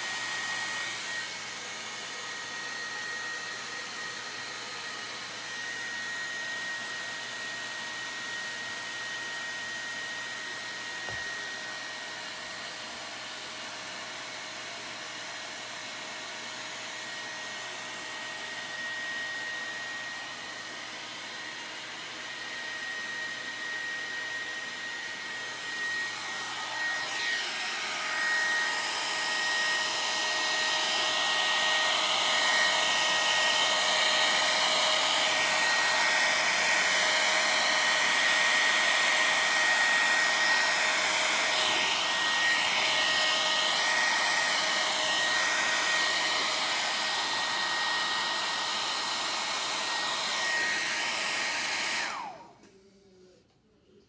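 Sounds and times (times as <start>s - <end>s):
heat gun blowing air: 0.0s - 13.5s, 16.8s - 52.6s.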